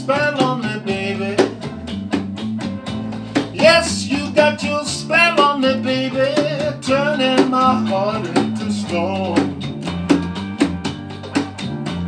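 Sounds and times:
backing music with bass and guitar: 0.0 - 12.0
wooden hand drum struck by hand: 0.3 - 12.0.

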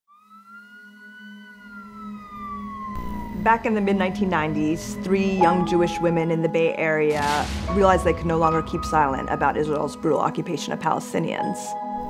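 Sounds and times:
siren wailing: 0.1 - 10.4.

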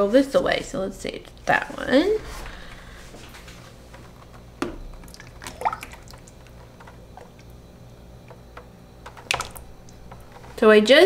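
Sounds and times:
thick liquid pouring: 5.0 - 6.6.

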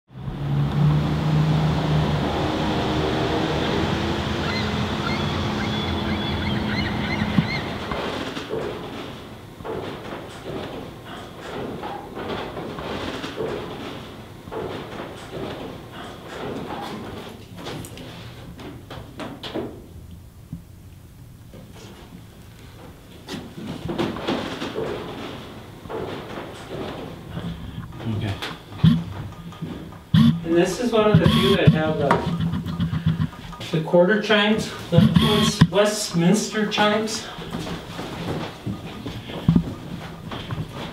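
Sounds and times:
footfalls climbing in a shaft: 0.1 - 19.9, 22.8 - 40.9
knocks and clunks: 5.0 - 20.7, 22.8 - 33.8, 34.6 - 40.9
held tones stepping between notes: 27.4 - 33.6, 34.9 - 35.8
muffled voices: 30.2 - 37.7.

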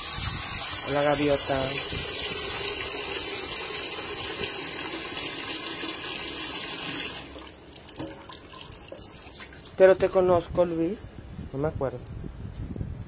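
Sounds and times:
water running from a tap: 0.0 - 9.8.

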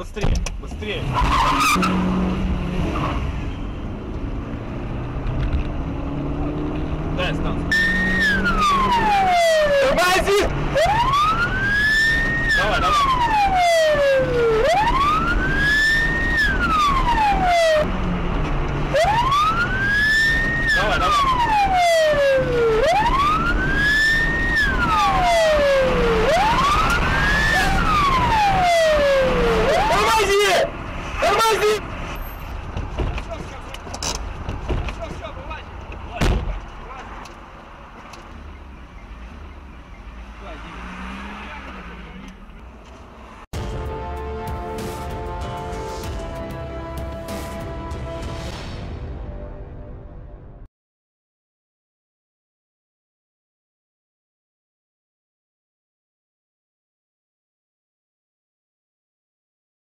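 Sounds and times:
engine and road noise: 0.0 - 50.7
police siren wailing: 7.6 - 17.9, 18.9 - 31.8.

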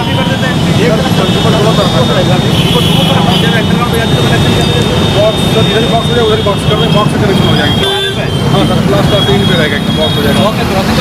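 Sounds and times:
men talking: 0.0 - 11.0
street traffic: 0.0 - 11.0.

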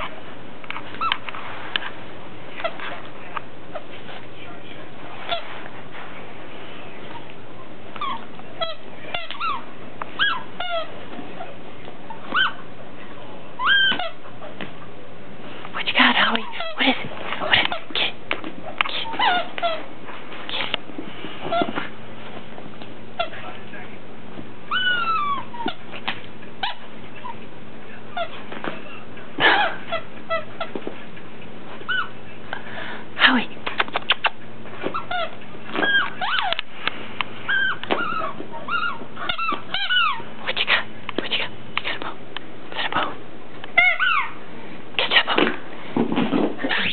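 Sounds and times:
dog whining: 0.9 - 1.3, 8.0 - 12.7, 13.6 - 14.6, 18.7 - 19.9, 24.7 - 25.9, 31.8 - 32.2, 34.1 - 36.6, 37.4 - 40.3, 43.7 - 44.4.

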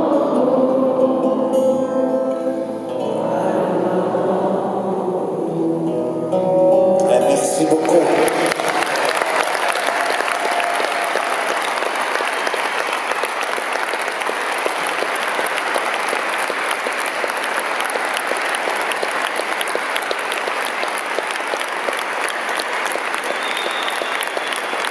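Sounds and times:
song ending: 0.0 - 8.8
audience applauding: 7.1 - 24.9.

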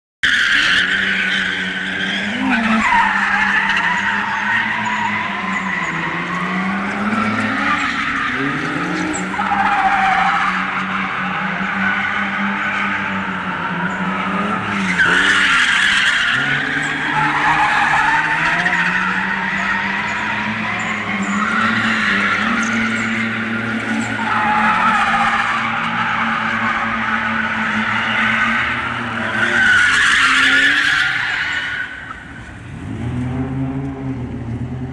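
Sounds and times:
car engine revving: 0.6 - 34.9.

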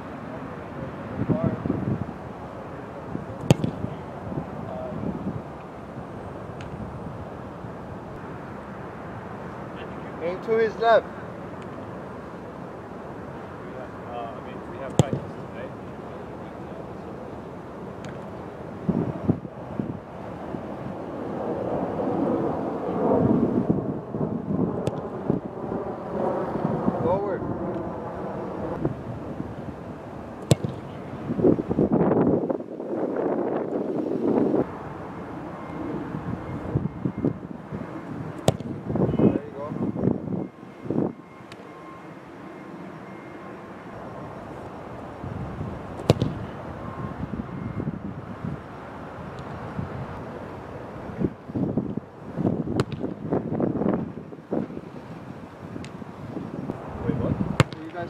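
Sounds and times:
wind noise on microphone: 0.0 - 9.4, 18.1 - 41.4, 44.0 - 58.0
soccer ball kicked thud: 3.4 - 3.9, 14.9 - 15.3, 30.4 - 31.0, 38.4 - 38.8, 46.0 - 46.4, 52.7 - 53.2, 57.6 - 57.9.

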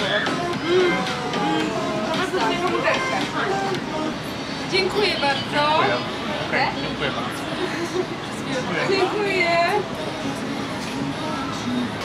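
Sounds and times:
people chatting: 0.0 - 3.6
background music: 0.0 - 12.0.

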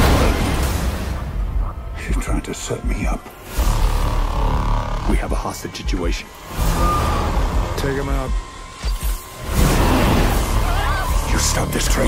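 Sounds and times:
dense trailer music and effects: 0.0 - 12.0.

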